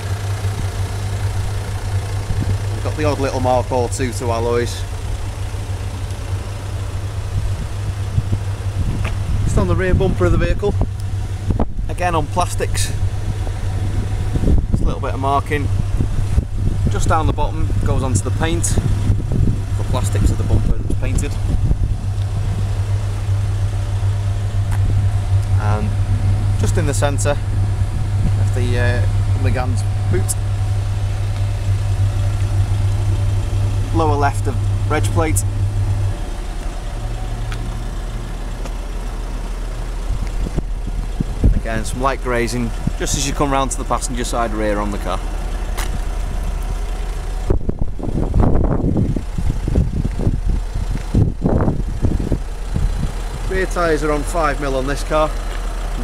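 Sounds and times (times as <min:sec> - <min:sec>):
car engine idling: 0:00.0 - 0:56.0
steady low hum: 0:00.0 - 0:56.0
wind gusts on microphone: 0:07.2 - 0:11.9, 0:12.6 - 0:22.8, 0:40.0 - 0:43.2, 0:47.4 - 0:53.6.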